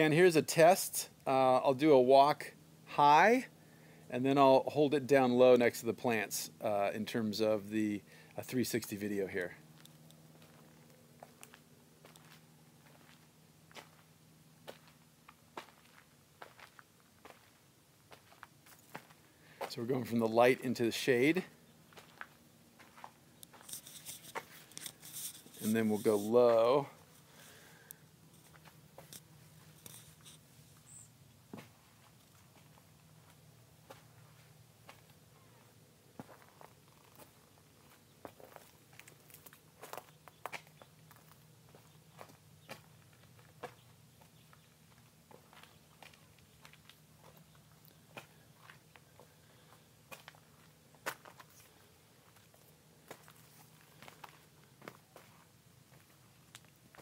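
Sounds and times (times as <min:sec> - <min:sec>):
faint low hum: 0:00.0 - 0:57.0.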